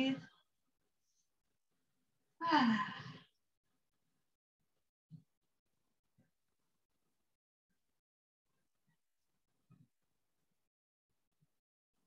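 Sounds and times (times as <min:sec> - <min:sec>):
woman speaking: 0:00.0 - 0:00.2.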